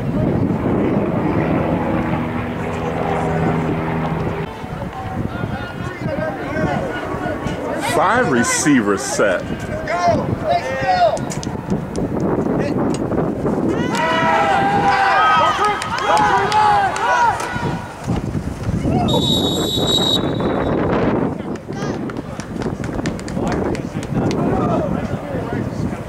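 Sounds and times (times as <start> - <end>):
voices shouting and yelling: 1.3 - 11.7, 13.7 - 18.1
referee's whistle: 19.1 - 20.8.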